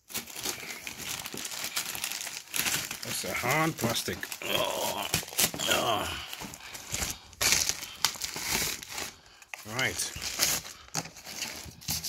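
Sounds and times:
plastic bag crinkling and tearing: 0:00.0 - 0:12.0.

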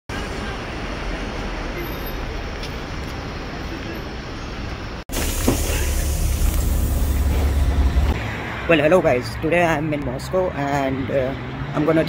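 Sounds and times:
street traffic rumble: 0:00.1 - 0:12.0.

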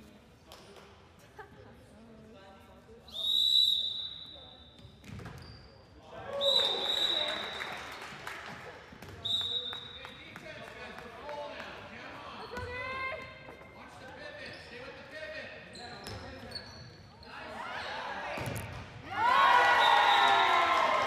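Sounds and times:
sneakers squeaking: 0:04.0 - 0:06.1, 0:12.2 - 0:19.0.

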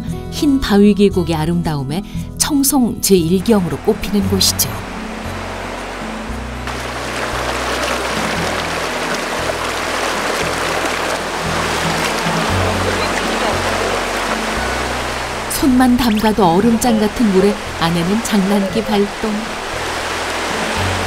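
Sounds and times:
background music of low notes: 0:00.0 - 0:21.0
stream rapids rushing: 0:03.4 - 0:21.0.

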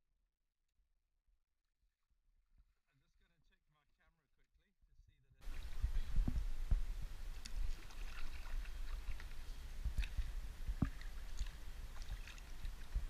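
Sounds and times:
low microphone rumble: 0:05.4 - 0:13.0
water splashing and sloshing: 0:05.4 - 0:13.0
paddle knocking on hull: 0:09.9 - 0:12.4.

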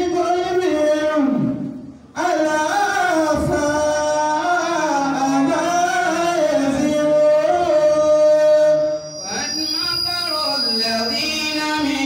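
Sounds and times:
man chanting over a microphone: 0:00.0 - 0:12.0.

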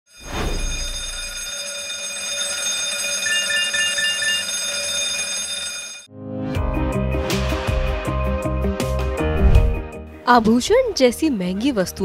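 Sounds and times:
steady ringing alarm tone: 0:00.1 - 0:06.1.

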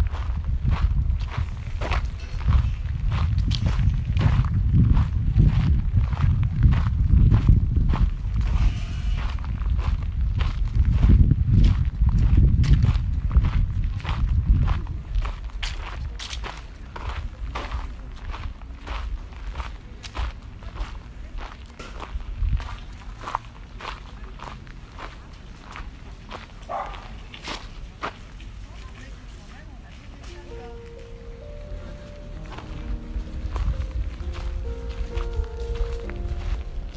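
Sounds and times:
low rumble: 0:00.0 - 0:15.4, 0:31.3 - 0:36.9
footsteps on gravel: 0:00.0 - 0:36.9.

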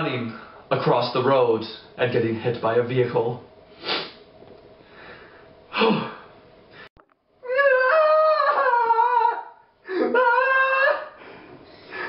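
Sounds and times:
young man wailing: 0:07.4 - 0:11.2.

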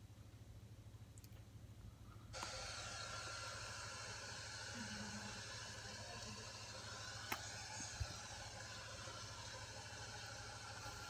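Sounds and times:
faint steady hiss: 0:00.0 - 0:11.0
thin steady tone: 0:02.2 - 0:11.0.

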